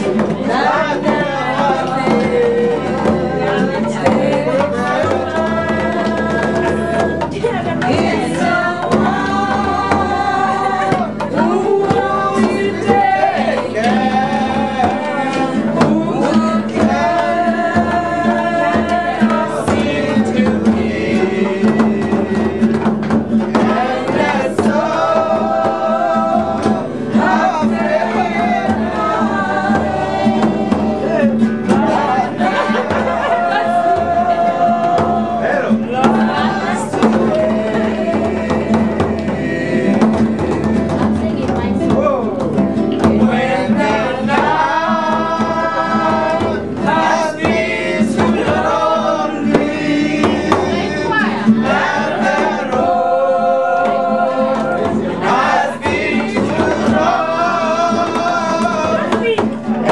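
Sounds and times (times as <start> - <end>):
acoustic guitar: 0.0 - 59.9
group singing: 0.0 - 59.9
hand drum beaten by palm: 0.0 - 59.9.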